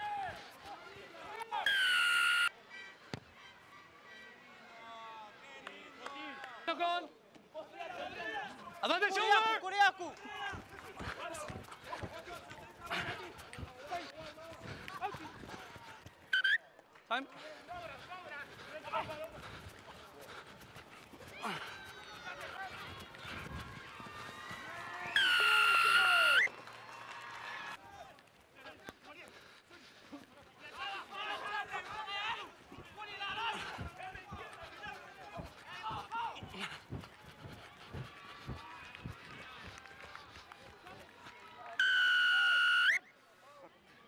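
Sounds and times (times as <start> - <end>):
thin crowd: 0.0 - 44.0
referee's whistle blast: 1.6 - 2.5, 16.3 - 16.6, 25.1 - 26.5, 41.8 - 43.0
faint players shouting: 17.8 - 26.5.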